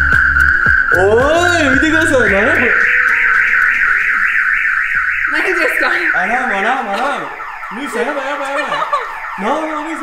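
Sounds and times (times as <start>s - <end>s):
warbling alarm siren: 0.0s - 10.0s.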